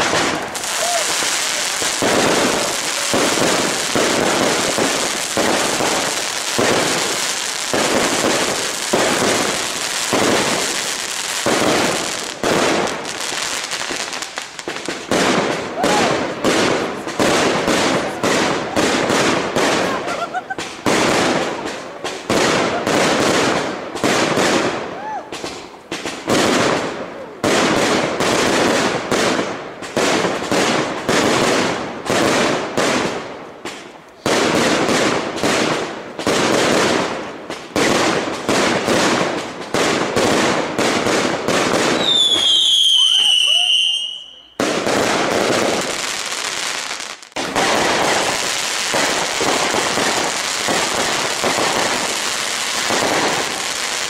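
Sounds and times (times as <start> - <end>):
fireworks bangs and crackle: 0.0 - 54.0.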